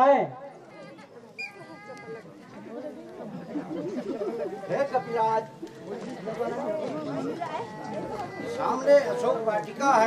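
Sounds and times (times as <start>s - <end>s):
background chatter of voices: 0.0s - 10.0s.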